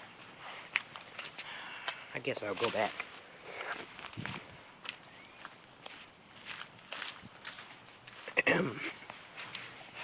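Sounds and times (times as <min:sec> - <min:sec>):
footsteps scuffing on pavement: 0:03.7 - 0:08.4.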